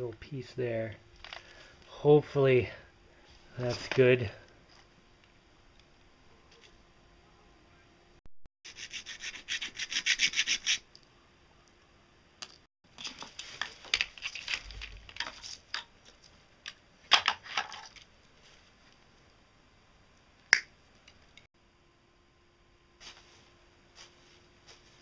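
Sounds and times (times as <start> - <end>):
wire rustling and scraping: 12.9 - 16.4.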